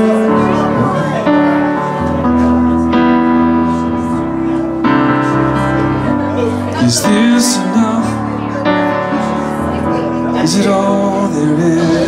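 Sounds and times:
digital piano chords: 0.0 - 12.0.

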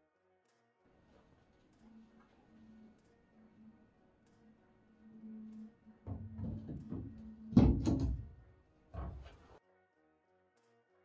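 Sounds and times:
faint background music: 0.0 - 11.0
deck hatch knocking and rattling: 6.1 - 8.4.

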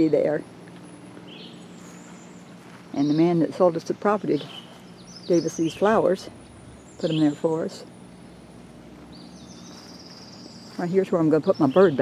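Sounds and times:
woman's voice: 0.0 - 0.5, 2.9 - 4.7, 5.3 - 6.4, 7.0 - 7.9, 10.7 - 12.0.

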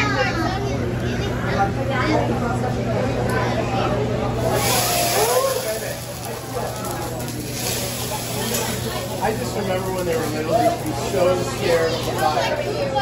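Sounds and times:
voices of children and adults: 0.0 - 13.0
griddle hissing and sizzling: 4.2 - 13.0.

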